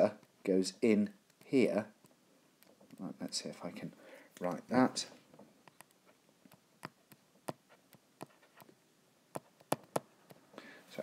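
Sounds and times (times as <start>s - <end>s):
stylus tapping on glass screen: 5.6s - 8.7s, 9.3s - 10.4s.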